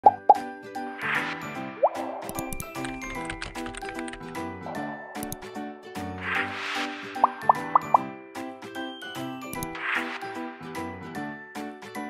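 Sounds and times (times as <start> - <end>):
light music: 0.0 - 12.0
short upward swoop: 6.1 - 8.0
soft whoosh: 6.2 - 7.5.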